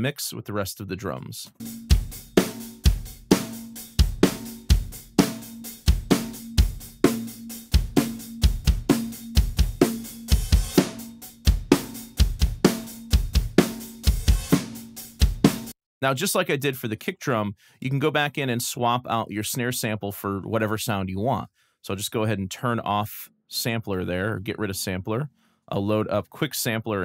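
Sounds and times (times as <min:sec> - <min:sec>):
drum kit playing a beat: 0:01.5 - 0:15.8.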